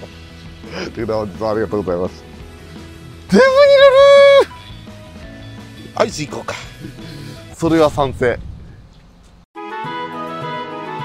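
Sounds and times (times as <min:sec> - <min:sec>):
soft background music: 0:00.0 - 0:08.4
man wailing: 0:03.3 - 0:04.5.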